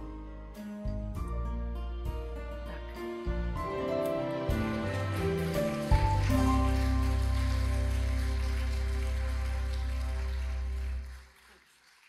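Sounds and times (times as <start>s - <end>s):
held chord over deep bass: 2.6s - 11.1s.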